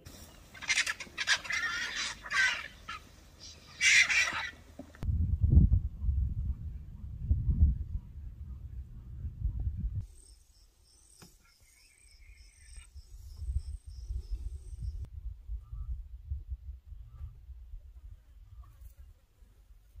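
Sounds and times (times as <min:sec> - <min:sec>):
low rumble: 0:05.0 - 0:10.0
insects chirping in a pulsed trill: 0:10.0 - 0:15.1.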